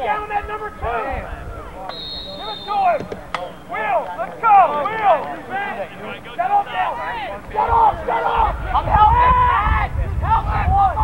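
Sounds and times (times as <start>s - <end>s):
voices shouting: 0.0s - 11.0s
referee's whistle: 1.9s - 3.8s.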